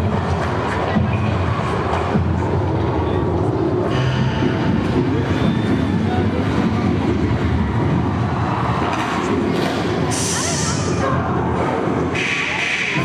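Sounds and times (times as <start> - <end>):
low rumbling soundtrack over speakers: 0.0 - 13.0.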